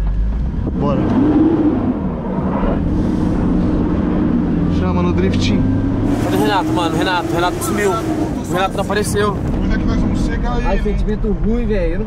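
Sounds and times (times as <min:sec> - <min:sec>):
car engine pulling away: 0:00.0 - 0:12.0
low road rumble: 0:00.0 - 0:12.0.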